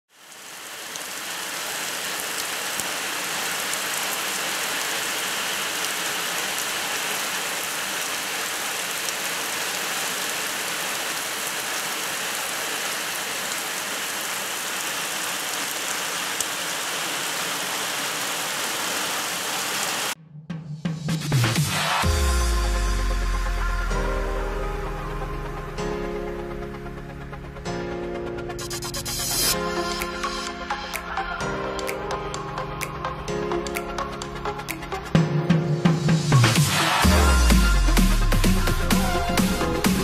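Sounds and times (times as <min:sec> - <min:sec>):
heavy rain on wet ground: 0:00.1 - 0:20.2, 0:36.3 - 0:40.0.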